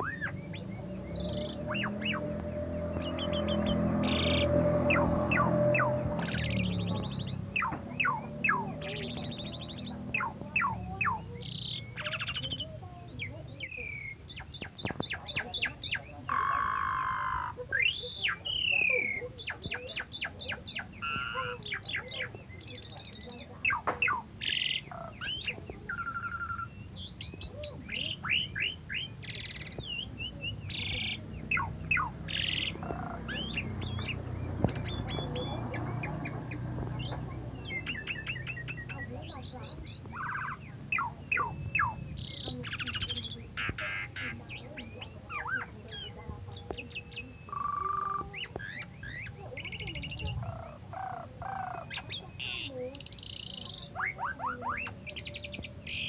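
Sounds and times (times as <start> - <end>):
starling singing: 0.0 - 56.0.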